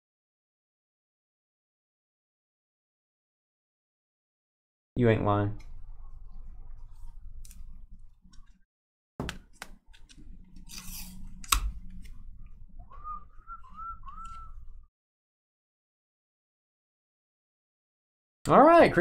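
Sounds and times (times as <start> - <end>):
cards clicking and rustling: 9.2 - 12.2.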